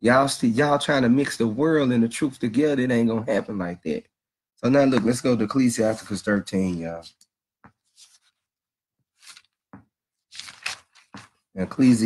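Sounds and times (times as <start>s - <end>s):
book pages turning: 7.8s - 8.5s, 9.2s - 9.6s, 10.3s - 11.4s.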